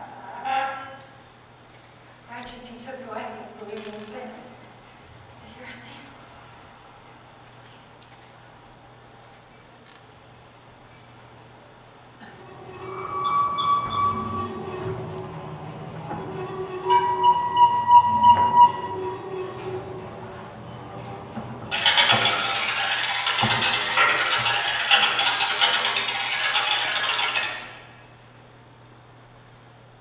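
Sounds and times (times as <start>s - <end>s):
sparse sustained tones: 12.4s - 26.3s.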